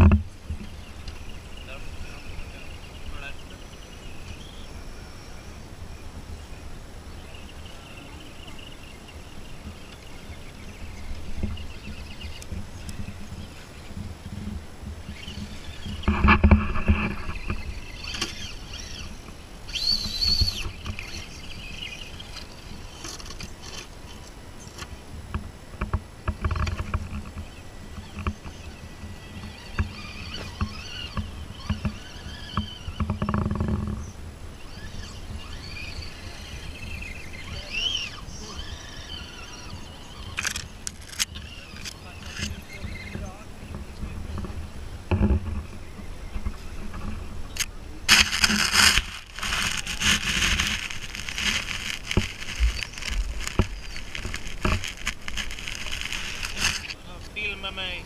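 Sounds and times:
electric motors whining: 0:00.0 - 0:58.0
low rumbles: 0:00.0 - 0:58.0
toy trucks clicking and scraping soil: 0:14.0 - 0:24.9, 0:28.0 - 0:43.4, 0:46.4 - 0:57.4.

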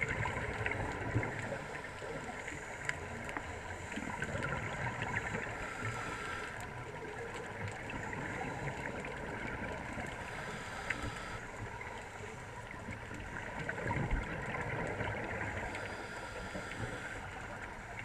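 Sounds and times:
muffled underwater rushing: 0:00.0 - 0:18.0
faint clicks: 0:00.4 - 0:18.0.

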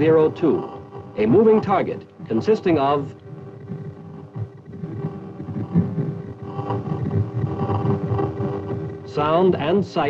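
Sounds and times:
radar doppler fluttering rumble: 0:00.0 - 0:10.0
steady speaker hum: 0:00.0 - 0:10.0.

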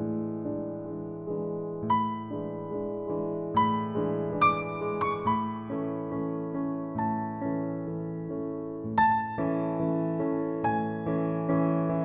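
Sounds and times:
slow gentle piano music: 0:00.0 - 0:12.0.

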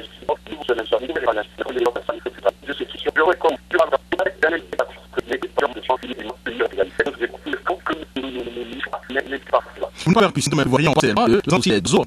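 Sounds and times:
voice over telephone: 0:00.0 - 0:10.1.

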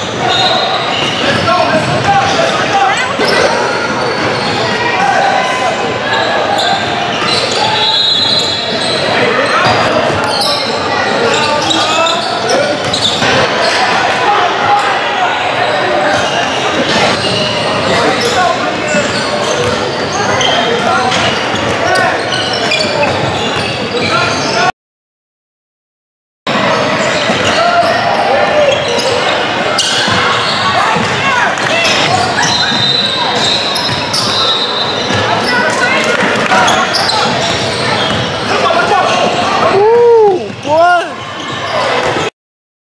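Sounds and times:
din of voices in gym: 0:00.0 - 0:24.7, 0:26.5 - 0:42.3.

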